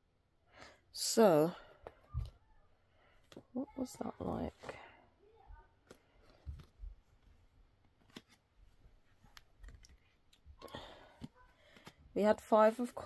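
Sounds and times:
cards clicking and tapping: 5.8s - 6.8s, 7.8s - 8.4s, 9.2s - 12.0s.

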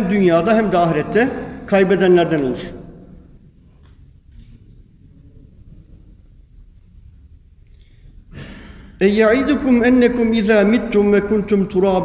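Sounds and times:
low steady hum: 0.0s - 12.0s
man's in-breath: 7.7s - 9.0s.

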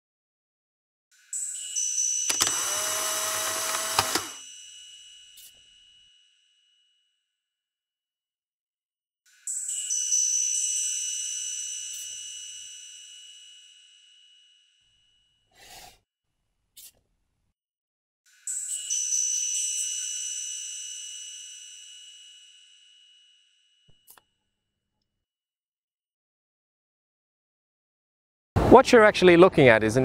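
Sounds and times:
high ringing tones: 1.4s - 7.1s, 9.5s - 15.5s, 18.5s - 23.9s
loud machine-like whirring: 2.3s - 4.4s
sharp clicks: 2.3s - 4.4s.

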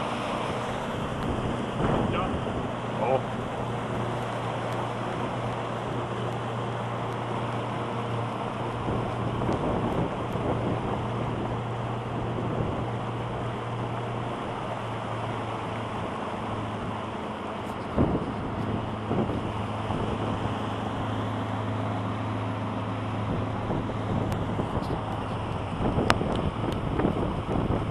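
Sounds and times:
boat motor humming: 0.0s - 27.9s
water and wind rushing past hull: 0.0s - 27.9s.

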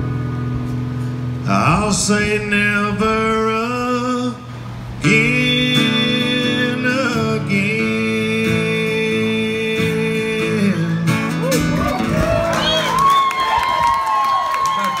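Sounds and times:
acoustic guitars ringing chord: 0.0s - 13.1s
audience cheering and whistling: 11.4s - 15.0s.

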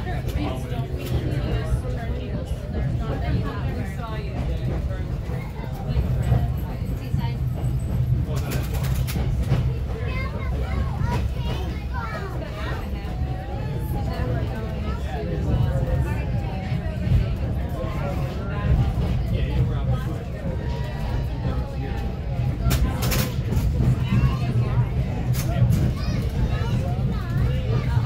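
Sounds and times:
indistinct passenger voices: 0.0s - 28.0s
train coach rumbling on track: 0.0s - 28.0s.

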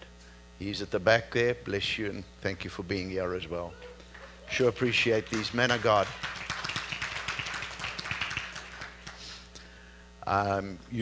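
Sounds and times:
congregation applauding: 4.1s - 9.5s.

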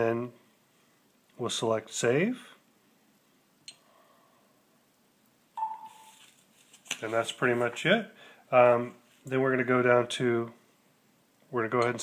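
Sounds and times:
short electronic beep: 5.6s - 6.1s.

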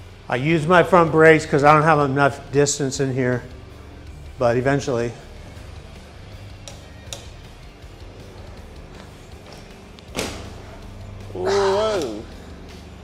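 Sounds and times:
faint background music: 0.0s - 13.0s
light clicks: 6.5s - 7.3s.

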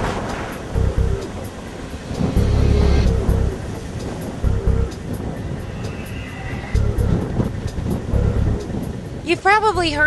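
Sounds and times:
wind gusting on microphone: 0.0s - 10.0s.

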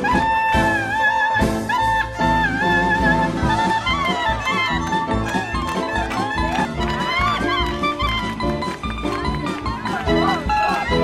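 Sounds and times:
steady driving beat: 2.6s - 11.0s.

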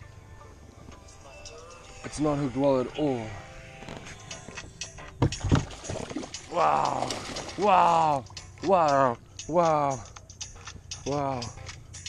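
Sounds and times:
dull thumps on canoe hull: 5.2s - 6.3s.

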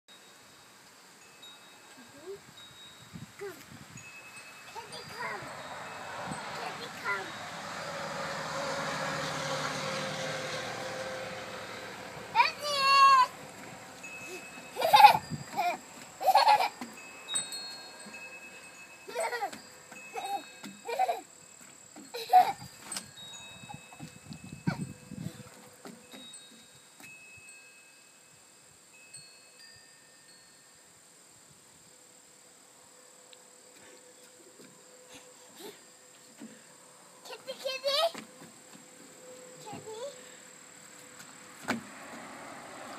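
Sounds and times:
faint high ringing tones: 0.1s - 7.9s, 14.0s - 36.2s
child calling out: 12.4s - 13.3s
small footsteps on wooden deck: 38.1s - 40.3s.

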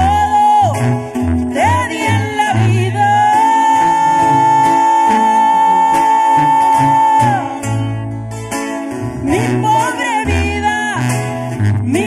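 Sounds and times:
strummed acoustic guitars: 0.0s - 12.0s
tuba bass notes: 0.0s - 12.0s
woman singing high note: 1.5s - 7.6s.

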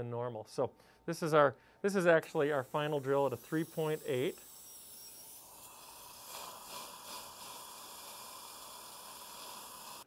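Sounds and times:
faint dental drill whine: 1.9s - 10.0s
suction hiss: 1.9s - 10.0s.

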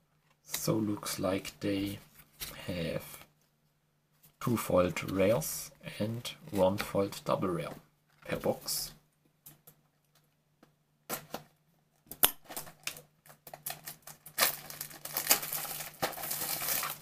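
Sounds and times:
wrapping crinkling and tearing: 12.4s - 17.0s.

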